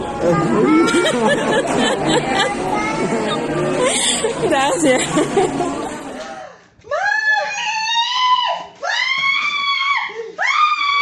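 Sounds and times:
people talking and exclaiming: 0:00.0 - 0:11.0.

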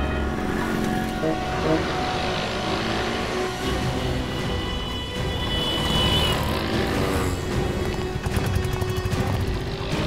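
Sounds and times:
vehicles passing on street: 0:00.0 - 0:10.0.

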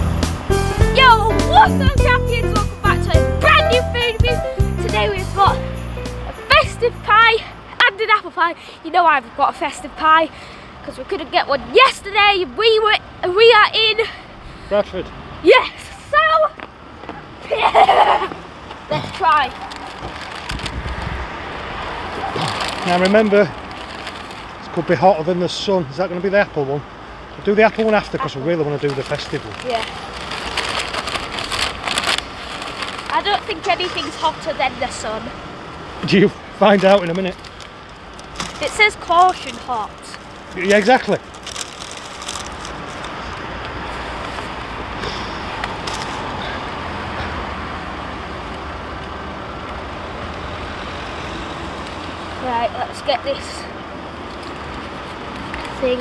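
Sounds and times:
road traffic hum: 0:00.0 - 0:56.0
paper bag rustling: 0:19.5 - 0:21.2, 0:22.1 - 0:24.6, 0:28.8 - 0:34.4, 0:36.7 - 0:43.4.

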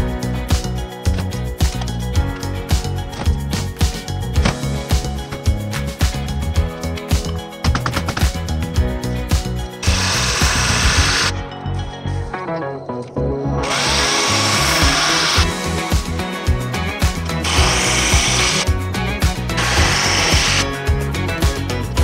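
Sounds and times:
music with steady beat: 0:00.0 - 0:12.7, 0:13.6 - 0:22.0
power drill running: 0:09.8 - 0:11.3, 0:13.6 - 0:15.8, 0:17.4 - 0:18.7, 0:19.5 - 0:20.8.

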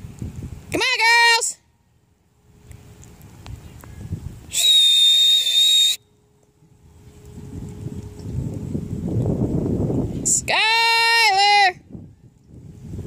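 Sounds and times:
high-pitched whistle: 0:04.5 - 0:06.3.

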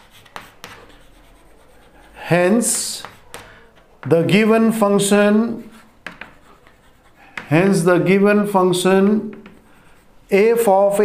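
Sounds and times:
chalk tapping on chalkboard: 0:00.0 - 0:01.9, 0:02.6 - 0:04.1, 0:05.8 - 0:07.8, 0:09.0 - 0:10.1
chalk scratching on chalkboard: 0:00.0 - 0:03.9, 0:05.0 - 0:07.9, 0:09.3 - 0:10.4.

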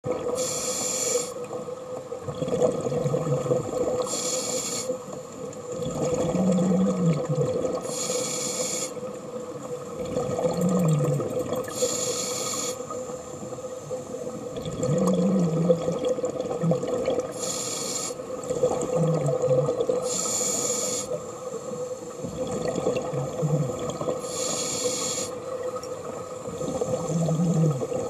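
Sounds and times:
scuba regulator breathing: 0:00.4 - 0:01.4, 0:04.1 - 0:05.0, 0:07.8 - 0:09.0, 0:11.7 - 0:12.9, 0:17.3 - 0:18.3, 0:20.0 - 0:22.2, 0:23.6 - 0:25.4.

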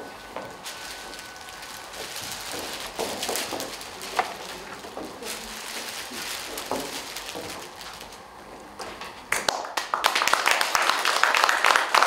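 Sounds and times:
audience applause: 0:09.3 - 0:12.0.

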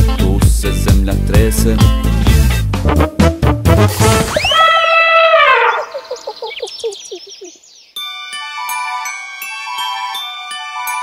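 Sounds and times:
cartoon elephant trumpet: 0:03.7 - 0:05.9
bird chirps and tweets: 0:05.6 - 0:08.2.

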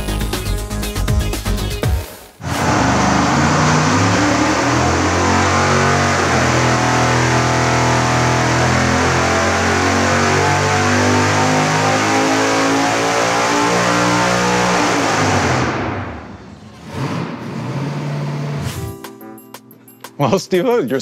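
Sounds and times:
background music: 0:00.0 - 0:02.4, 0:18.6 - 0:21.0
supercharged engine at full throttle: 0:02.4 - 0:18.7.

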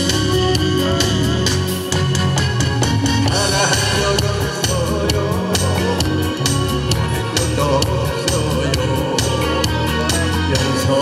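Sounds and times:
live band playing trot song: 0:00.0 - 0:11.0
steady drum beat: 0:00.0 - 0:11.0.

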